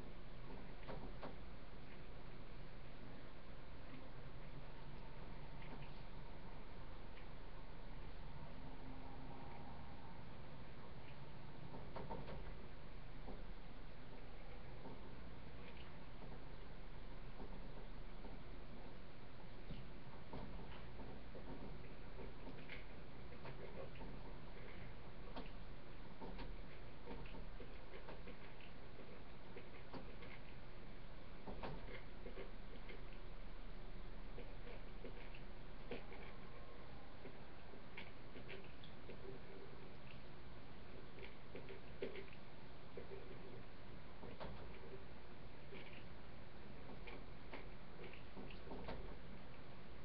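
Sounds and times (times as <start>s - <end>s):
low steady hum: 0.0s - 50.0s
microphone hiss: 0.0s - 50.0s
small clicks and ticks: 10.7s - 33.4s.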